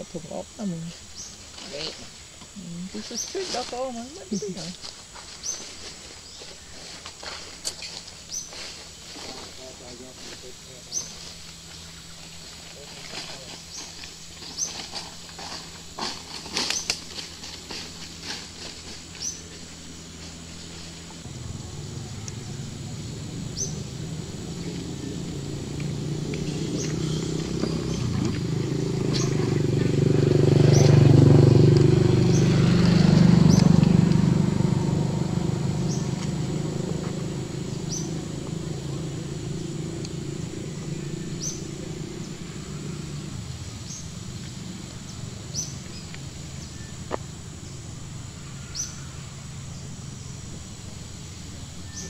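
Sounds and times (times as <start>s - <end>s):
vehicle engine hum passing: 0.0s - 52.0s.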